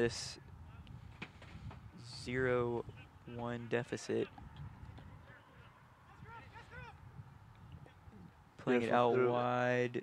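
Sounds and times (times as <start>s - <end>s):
wind rumble on microphone: 0.0s - 3.5s, 4.2s - 8.7s.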